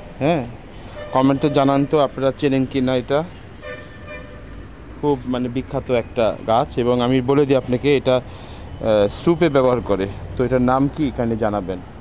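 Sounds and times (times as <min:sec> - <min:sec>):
faint vehicle horn: 0:00.8 - 0:02.3, 0:03.6 - 0:04.6.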